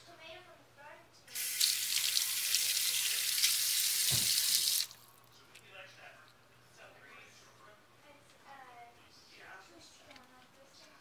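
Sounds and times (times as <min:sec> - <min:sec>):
faucet water running: 0:01.3 - 0:05.0.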